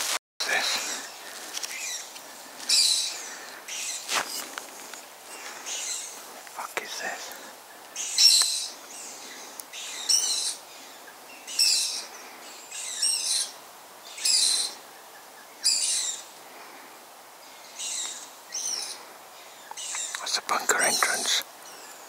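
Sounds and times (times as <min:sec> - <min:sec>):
owl hissing screech: 0:02.7 - 0:04.5, 0:08.0 - 0:10.9, 0:11.5 - 0:14.8.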